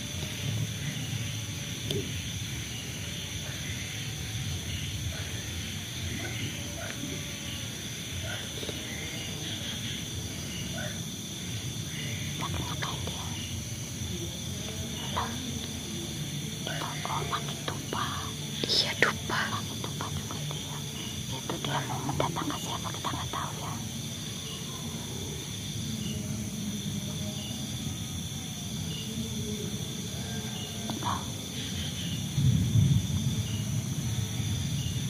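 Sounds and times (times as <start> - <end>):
night insects chirping: 0.0 - 35.0.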